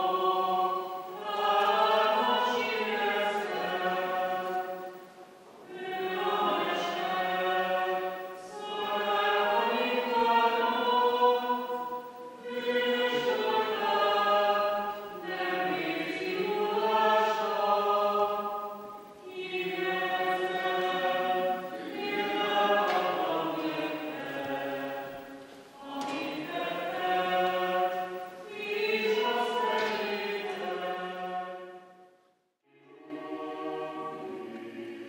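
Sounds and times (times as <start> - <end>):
choir singing slowly: 0.0 - 35.0.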